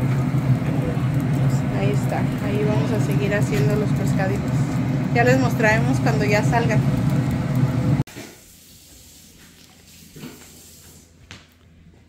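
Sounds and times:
pellet smoker whirring hum: 0.0s - 8.0s.

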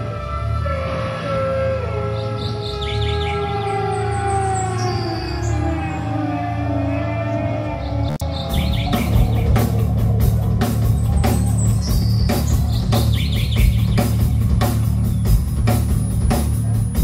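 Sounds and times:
low drone: 0.0s - 17.0s
rock band with drums: 0.0s - 17.0s
sliding guitar tones and chirps: 0.6s - 17.0s.

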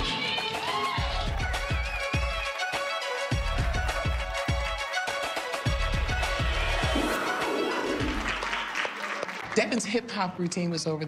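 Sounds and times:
hip-hop music: 0.0s - 9.0s
audience applause: 0.5s - 5.0s, 6.2s - 9.9s.

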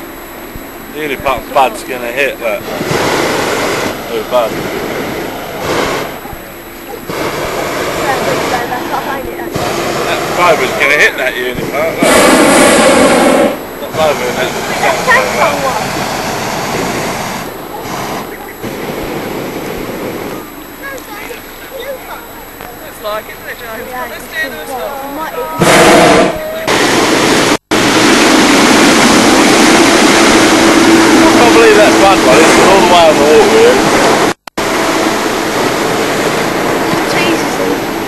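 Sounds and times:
loud rushing noise: 0.0s - 20.6s, 25.6s - 38.0s
constant low drone: 0.0s - 38.0s
propane burner blast: 0.0s - 38.0s.

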